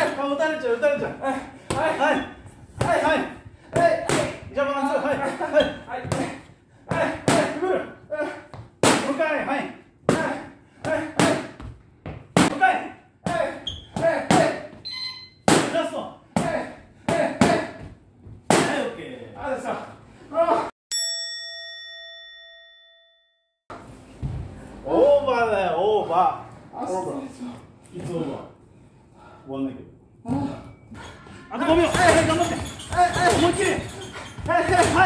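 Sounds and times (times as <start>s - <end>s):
boxing gloves hitting mitts: 2.7s - 7.7s, 10.1s - 12.6s, 13.3s - 14.8s, 15.4s - 18.9s, 31.7s - 35.0s
bell ringing: 20.9s - 23.6s.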